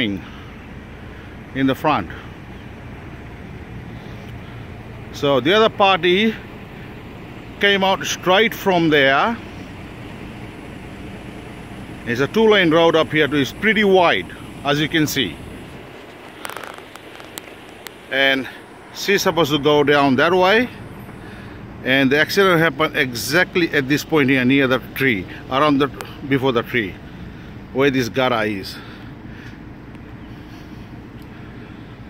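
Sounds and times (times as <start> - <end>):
distant vehicle engines rumbling: 0.0 - 32.0
faint outdoor background noise: 0.0 - 32.0
phone handling clicks and rustles: 15.8 - 18.1.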